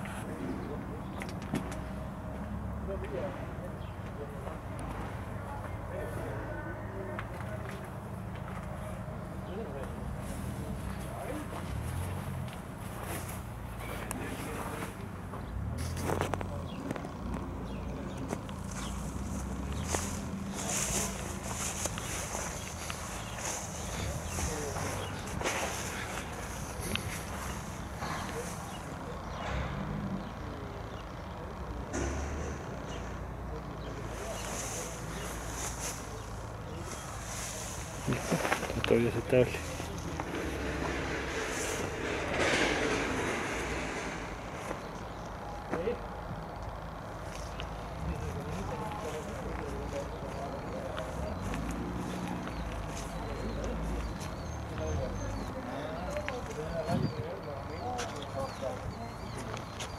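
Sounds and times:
indistinct voices: 0:00.0 - 0:59.9.

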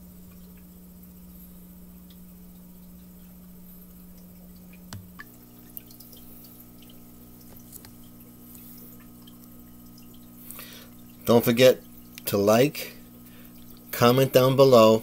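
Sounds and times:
aquarium equipment hum: 0:00.0 - 0:15.0
water drips and bubble pops: 0:04.0 - 0:12.3.

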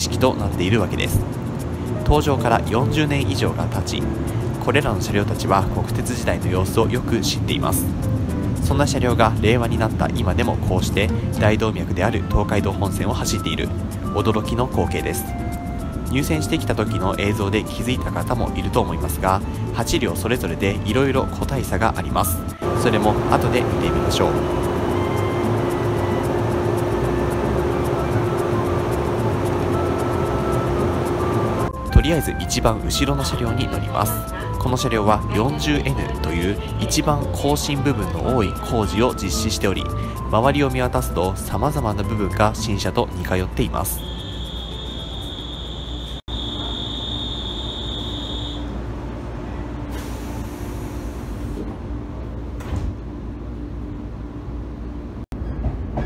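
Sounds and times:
background music with light beat: 0:00.0 - 0:43.8
electric train humming: 0:00.0 - 0:55.2
electronic warning tone: 0:22.6 - 0:31.7, 0:43.9 - 0:48.7
pneumatic doors closing with hiss: 0:49.9 - 0:51.8.

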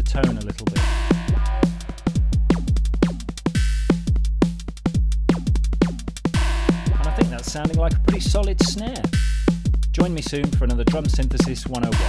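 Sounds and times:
kick drums with falling pitch: 0:00.0 - 0:12.0
synthesized snare drum: 0:00.0 - 0:12.0
hi-hat clicks: 0:05.3 - 0:12.0.

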